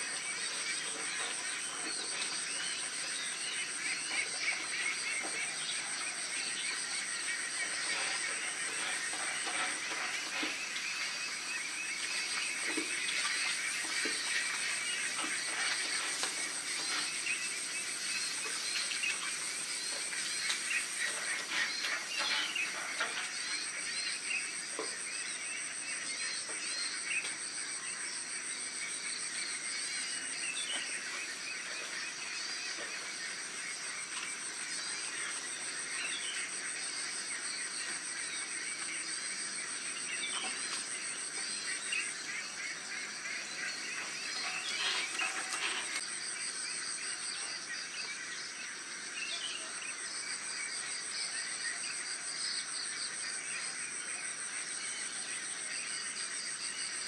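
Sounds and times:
frogs calling: 0.0 - 57.0
pulsing insect trill: 0.0 - 57.0.

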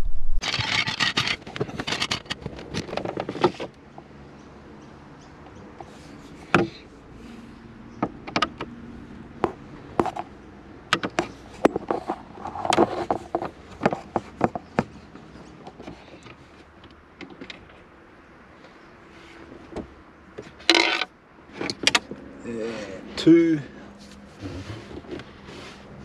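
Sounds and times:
plastic scraping: 0.0 - 3.7, 11.1 - 16.2.

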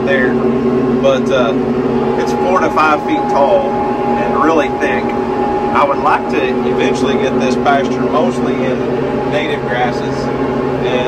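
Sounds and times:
man talking: 0.0 - 0.4, 1.0 - 1.6, 2.2 - 11.0
tractor engine droning: 0.0 - 11.0.

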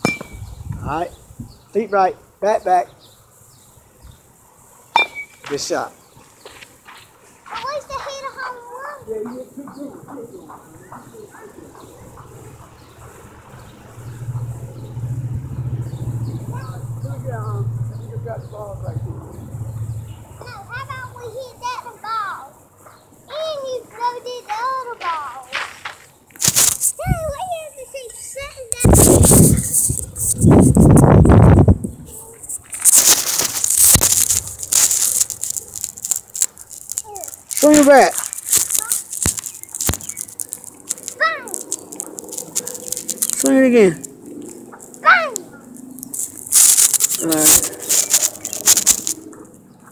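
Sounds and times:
people talking: 7.5 - 12.1, 16.5 - 19.3, 20.4 - 22.5, 23.3 - 25.6, 27.0 - 30.6, 37.0 - 39.0, 41.1 - 41.6, 43.3 - 44.1, 45.0 - 45.4, 47.2 - 48.0
engine humming: 10.0 - 24.1, 28.6 - 49.9
phone microphone handling noise: 28.8 - 43.4
person speaking: 37.0 - 39.1, 42.4 - 44.1, 46.6 - 49.1.

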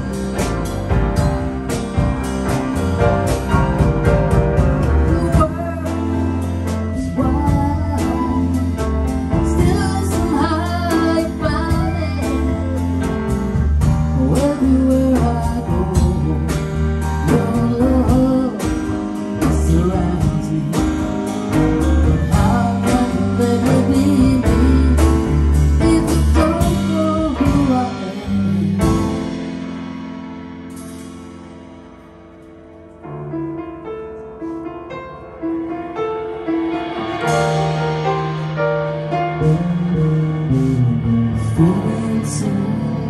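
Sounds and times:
electric bass: 0.0 - 32.3, 36.8 - 43.0
drum kit: 0.0 - 43.0
grand piano: 0.0 - 43.0.

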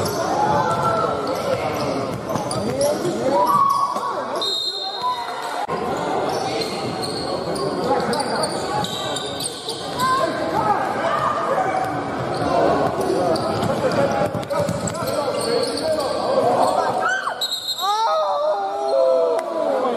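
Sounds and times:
people shouting and chattering: 0.0 - 19.9.

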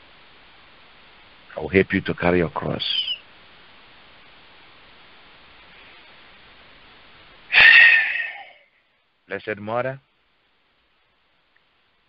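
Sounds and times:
faint background hiss: 0.0 - 12.0
high squeak falling in pitch: 7.5 - 8.6.

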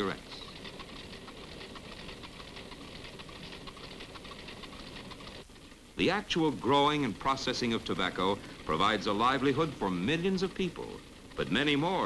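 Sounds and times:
machine rapid mechanical clatter: 0.0 - 5.5, 6.4 - 12.0.

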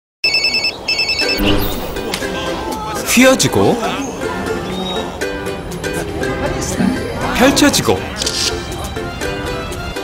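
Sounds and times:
electronic telephone ringer trilling: 0.2 - 1.4.

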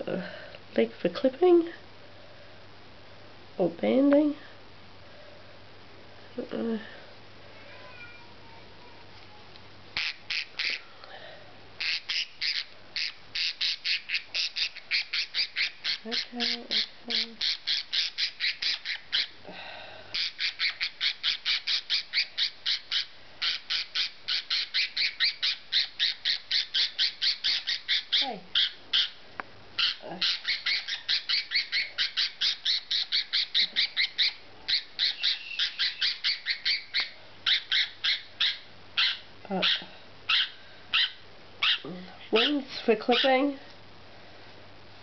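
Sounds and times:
cockatiel squawking harshly: 10.0 - 10.8, 11.8 - 19.4, 20.2 - 29.2, 29.8 - 43.3.

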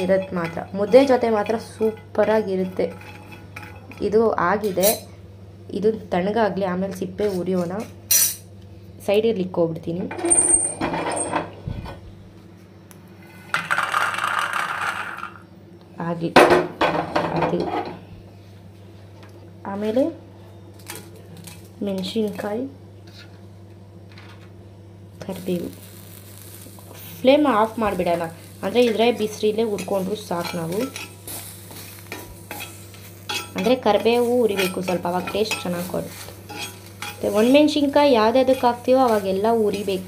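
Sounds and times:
metal spatula scraping pan: 0.0 - 5.1, 28.8 - 31.5, 32.1 - 40.0
faint sizzle: 0.0 - 10.0, 17.2 - 40.0
peanuts rattling into steel plate: 13.5 - 15.4.

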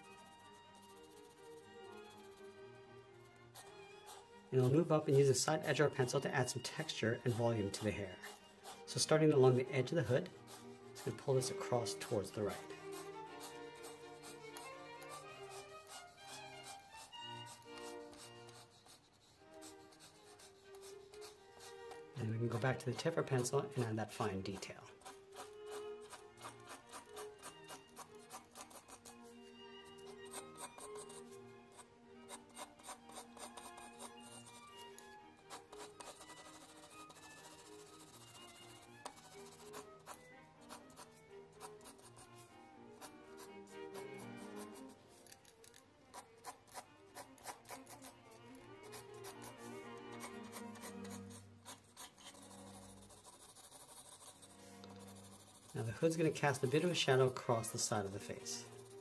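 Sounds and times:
pencil scratching on paper: 0.0 - 2.7, 3.5 - 59.0
soft background music: 0.0 - 59.0.

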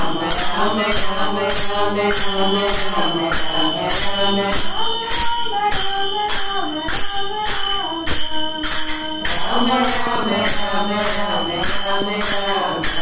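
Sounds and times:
group devotional singing: 0.0 - 13.0
small hand cymbals striking: 0.0 - 13.0.

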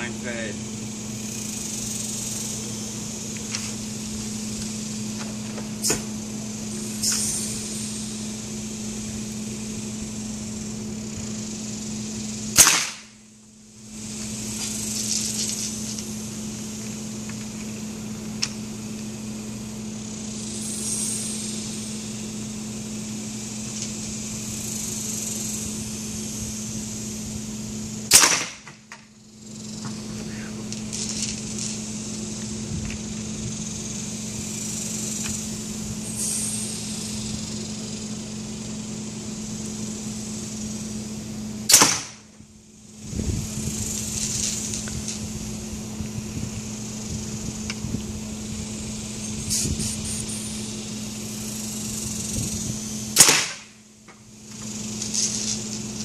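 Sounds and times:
steady mechanical hum: 0.0 - 56.0
pneumatic gun shots: 5.8 - 6.2, 6.8 - 8.2, 12.5 - 13.2, 28.1 - 29.1, 36.0 - 36.8, 41.6 - 42.3, 49.4 - 50.7, 53.1 - 53.8.

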